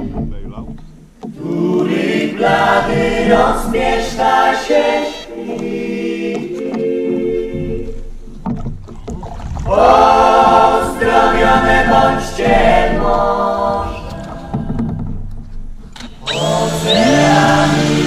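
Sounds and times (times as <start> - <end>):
choir singing in harmony: 1.3 - 8.2, 9.4 - 15.3, 16.1 - 18.0.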